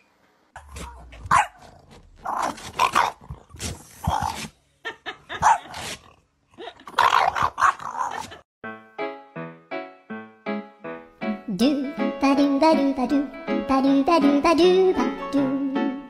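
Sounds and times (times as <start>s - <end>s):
dog growling and barking: 0.6s - 4.5s, 6.8s - 8.4s.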